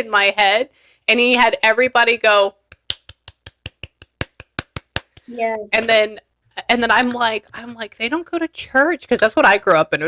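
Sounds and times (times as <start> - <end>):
hands clapping quickly: 2.6 - 5.3.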